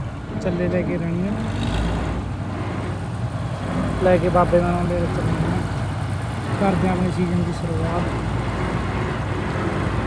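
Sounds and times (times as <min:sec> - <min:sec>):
diesel engine low rumble: 0:00.0 - 0:10.0.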